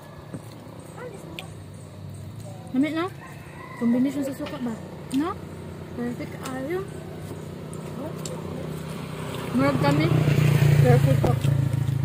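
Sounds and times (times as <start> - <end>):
rooster crowing: 3.0 - 4.8.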